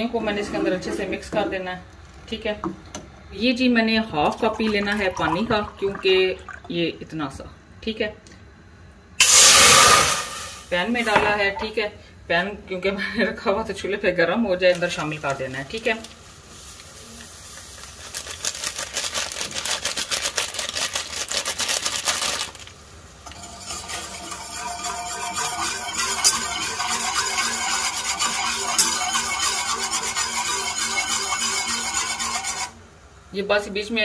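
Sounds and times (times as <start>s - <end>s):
whisk clinking in steel saucepan: 23.4s - 32.7s.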